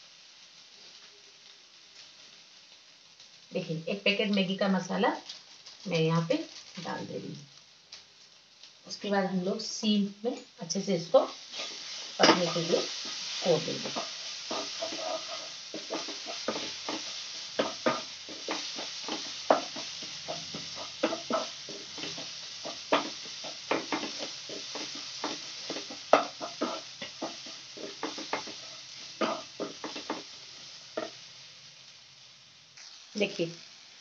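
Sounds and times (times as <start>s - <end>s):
masala sizzling: 0.0s - 34.0s
wooden spatula scraping a pan: 11.2s - 31.2s.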